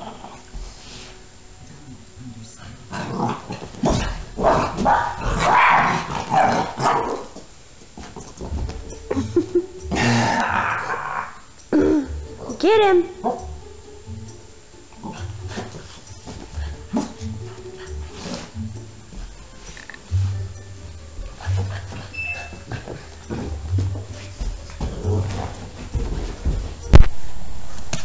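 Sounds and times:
puppy scuffling on carpet: 0:15.5 - 0:27.1.

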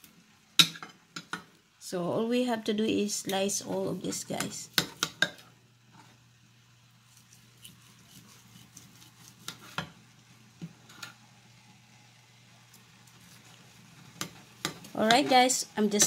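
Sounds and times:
low steady hum: 0:00.0 - 0:16.0
knife cutting meat: 0:07.1 - 0:09.8.

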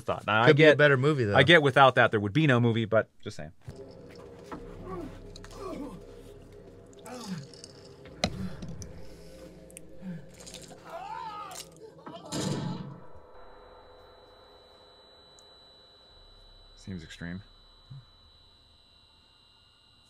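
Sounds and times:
high-pitched ringing tone: 0:13.0 - 0:20.0.

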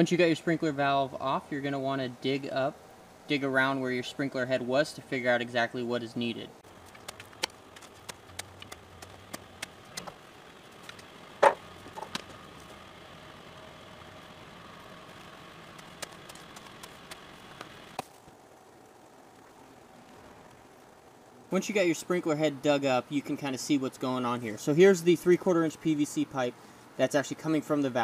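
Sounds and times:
steady background hum: 0:00.0 - 0:28.0.

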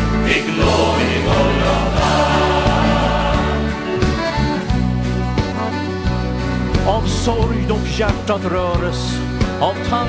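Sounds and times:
bass line: 0:00.0 - 0:08.0
piano accordion melody: 0:00.1 - 0:06.7.

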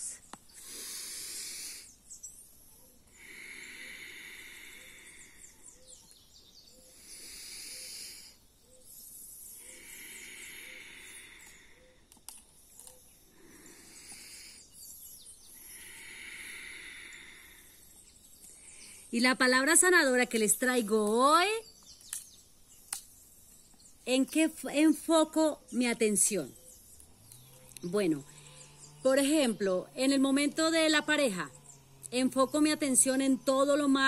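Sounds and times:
woman breathing deeply: 0:00.5 - 0:19.1.

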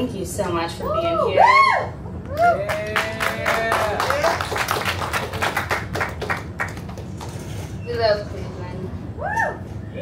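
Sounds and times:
audience clapping: 0:02.6 - 0:07.4.

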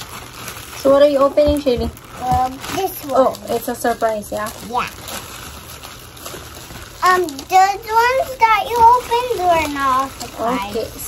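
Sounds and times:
plastic wrapping rustling: 0:00.0 - 0:11.0.

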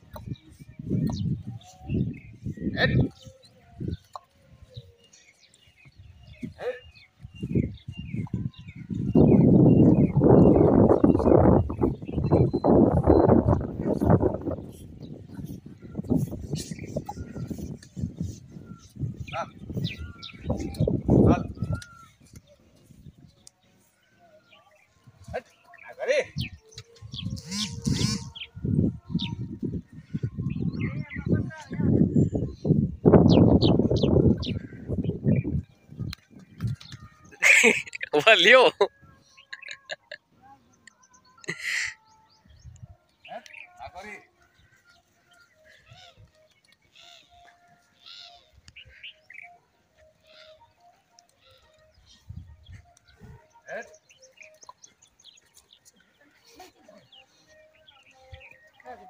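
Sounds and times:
bird chirps: 0:00.0 - 0:29.5, 0:33.2 - 0:43.9, 0:44.5 - 0:59.0.

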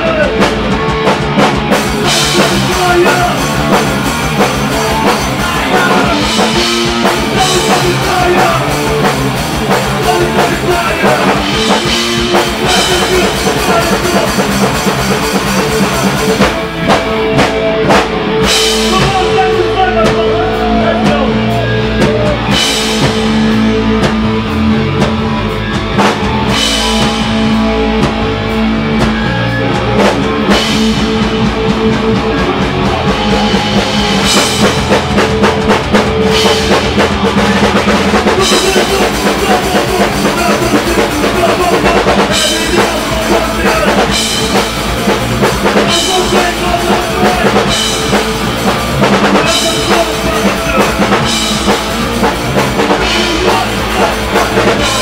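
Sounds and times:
punk band playing: 0:00.0 - 0:55.0.

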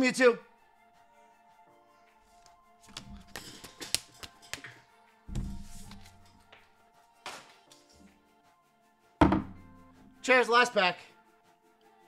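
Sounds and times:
cards tapped on tabletop: 0:02.8 - 0:06.2.

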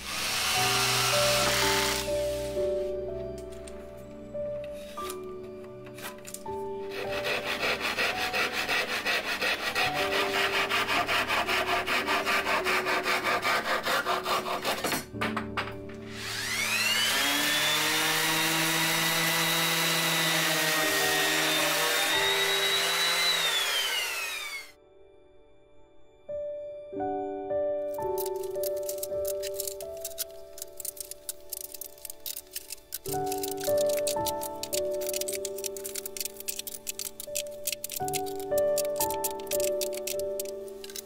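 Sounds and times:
hand saw cutting plywood: 0:00.0 - 0:02.6, 0:06.8 - 0:15.1, 0:16.1 - 0:24.7
power tool motor running: 0:00.0 - 0:02.6, 0:16.1 - 0:24.8.

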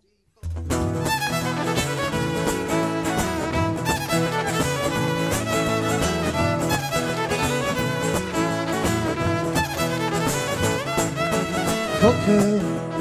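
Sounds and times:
acoustic guitars strumming: 0:00.4 - 0:13.0
fiddle playing tune: 0:00.9 - 0:13.0.

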